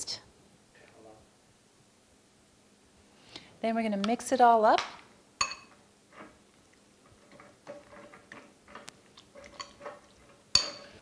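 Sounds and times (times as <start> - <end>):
spoon scraping in a bowl: 7.0 - 11.0.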